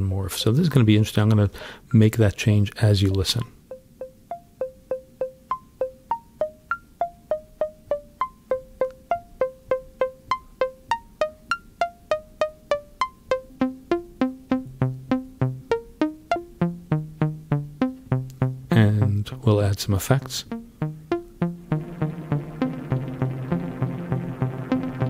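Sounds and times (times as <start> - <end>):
synthesizer plucks: 3.6 - 25.0.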